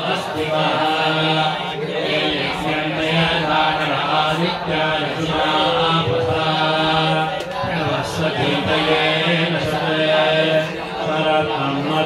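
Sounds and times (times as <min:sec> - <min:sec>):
men chanting together: 0:00.0 - 0:12.0.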